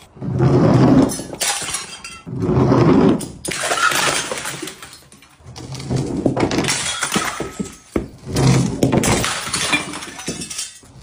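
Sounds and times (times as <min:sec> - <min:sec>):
glass bottles smashing: 0:01.0 - 0:02.3, 0:03.1 - 0:11.0
glass shards clinking: 0:01.0 - 0:02.3, 0:03.2 - 0:05.4, 0:09.0 - 0:11.0.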